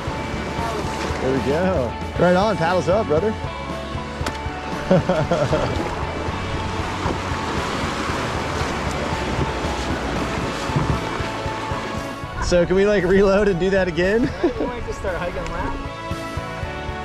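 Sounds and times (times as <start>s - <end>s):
whitewater rapids rushing: 0.0s - 2.9s, 4.5s - 14.0s
background music: 0.0s - 17.0s.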